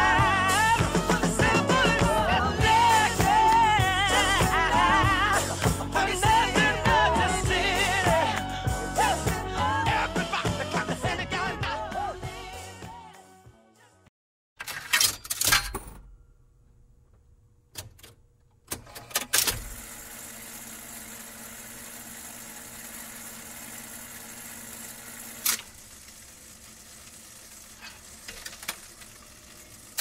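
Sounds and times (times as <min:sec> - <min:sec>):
jukebox mechanism clicks and clunks: 0:14.6 - 0:16.2, 0:17.7 - 0:19.9, 0:25.4 - 0:25.8, 0:27.9 - 0:30.0
jukebox mechanism whirring hiss: 0:19.0 - 0:30.0.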